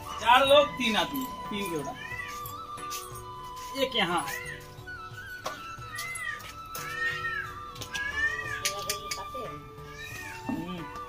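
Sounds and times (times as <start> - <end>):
background music with held notes: 0.0 - 11.0
cat meowing: 1.8 - 2.6, 4.2 - 4.7, 5.9 - 9.0, 9.8 - 11.0.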